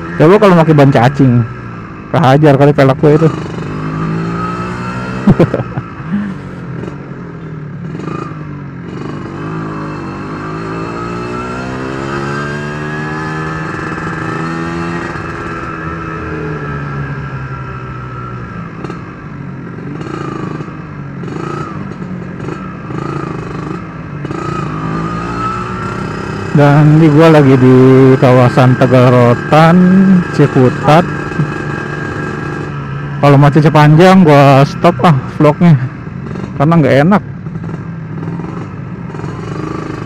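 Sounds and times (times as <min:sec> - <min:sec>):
two-stroke motorcycle engine: 0:00.0 - 0:40.0.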